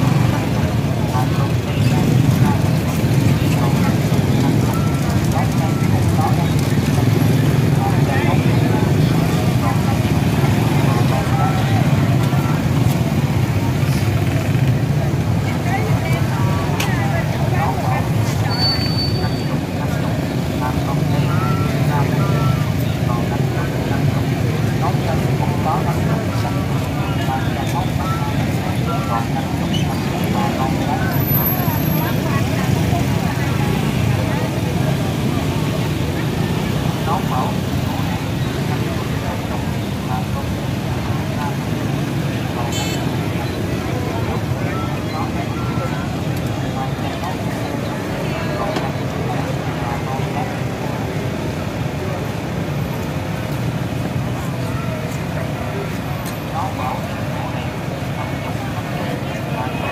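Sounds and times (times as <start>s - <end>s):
crowd talking: 0.0s - 59.9s
motorbike and scooter traffic: 0.0s - 59.9s.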